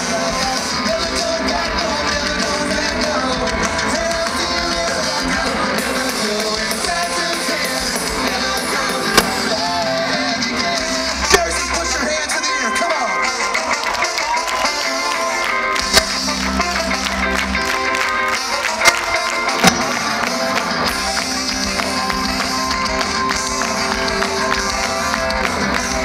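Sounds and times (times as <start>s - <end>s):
live ska-punk band playing: 0.0s - 26.0s
sharp cracks near microphone: 9.1s - 9.7s.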